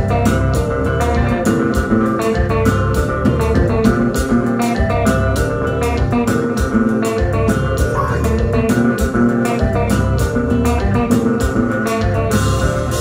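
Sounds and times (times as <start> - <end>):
live band playing: 0.0 - 13.0.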